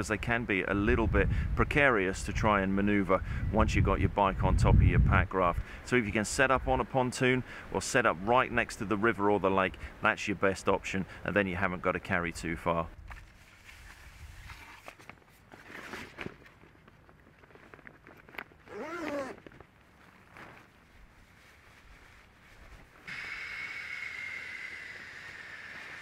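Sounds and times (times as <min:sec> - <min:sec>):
rustling of nylon gear: 0:13.1 - 0:23.1.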